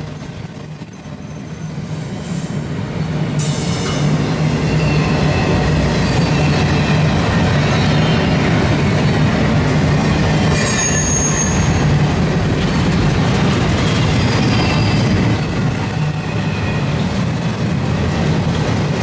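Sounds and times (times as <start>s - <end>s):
high wheel squeals: 0.0s - 8.5s, 10.4s - 13.0s, 13.6s - 17.1s
train wheels rumbling on rails: 0.0s - 19.0s.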